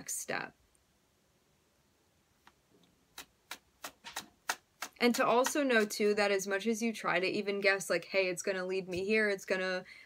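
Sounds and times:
cards being shuffled: 3.1s - 6.1s.

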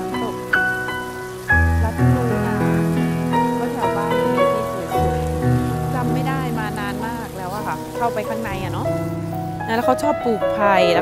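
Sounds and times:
background music with held notes: 0.0s - 11.0s
water splashing over rocks: 0.0s - 11.0s.

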